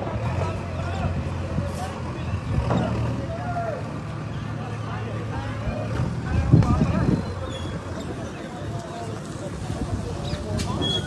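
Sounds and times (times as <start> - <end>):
engine humming: 0.0 - 11.0.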